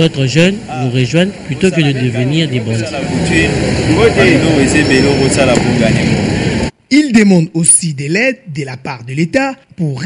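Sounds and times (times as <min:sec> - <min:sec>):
people talking: 0:00.0 - 0:06.2, 0:06.9 - 0:10.0
traffic din: 0:00.0 - 0:10.0.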